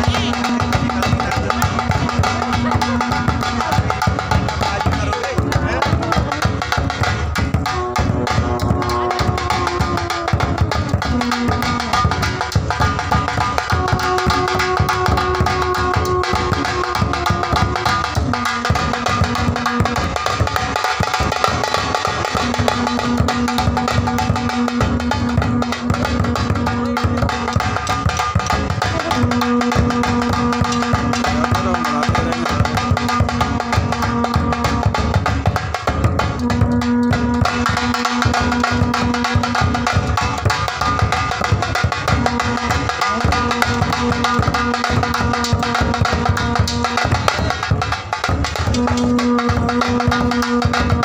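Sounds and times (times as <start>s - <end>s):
horn blowing long notes: 0.0s - 1.6s, 7.6s - 12.5s, 13.6s - 20.0s, 28.8s - 35.2s, 36.2s - 40.1s, 42.1s - 47.3s, 48.6s - 51.0s
kettle drums beating: 0.0s - 51.0s.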